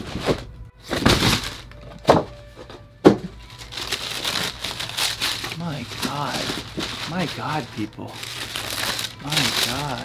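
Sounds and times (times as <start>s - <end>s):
tissue paper rustling: 3.5s - 10.0s.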